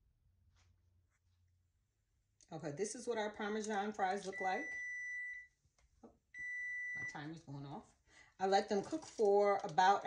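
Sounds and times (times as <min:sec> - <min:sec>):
cooking timer beeping: 0:04.3 - 0:05.5, 0:06.4 - 0:07.2.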